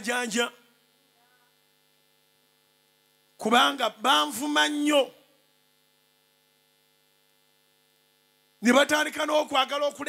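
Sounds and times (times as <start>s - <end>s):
amplified voice: 0.0s - 0.7s, 3.4s - 5.3s, 8.6s - 10.0s
electrical hum: 0.0s - 10.0s.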